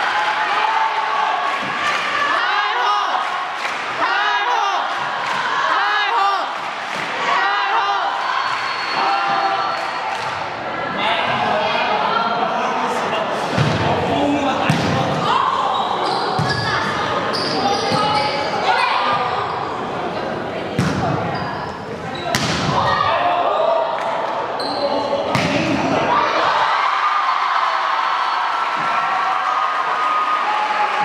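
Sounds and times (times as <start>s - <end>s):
people calling and chattering: 0.0s - 29.1s
volleyball being hit: 22.3s - 22.9s, 25.3s - 25.8s.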